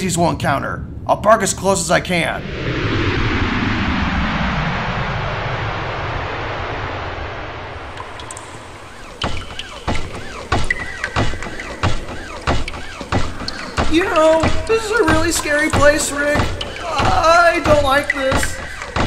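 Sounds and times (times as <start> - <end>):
spaceship engine whooshing hum: 0.0 - 9.3
footsteps: 8.0 - 19.0.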